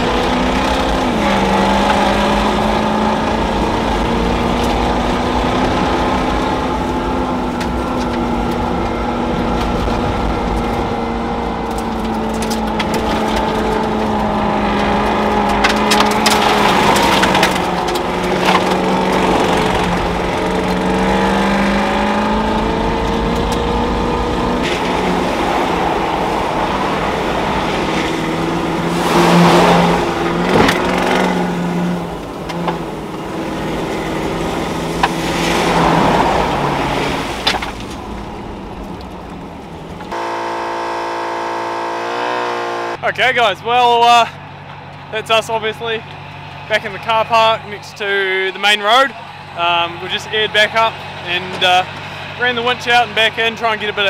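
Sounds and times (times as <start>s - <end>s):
car engine driving: 0.0s - 54.0s
gravel knocks and crunches: 7.6s - 21.3s.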